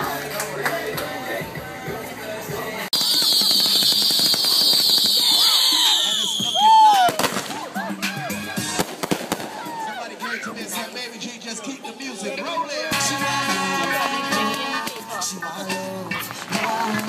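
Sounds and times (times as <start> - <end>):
firework crackling: 2.9 - 7.8, 8.6 - 9.9
firework whistle falling in pitch: 3.0 - 7.2
firework bang: 3.0 - 7.6, 8.7 - 9.6.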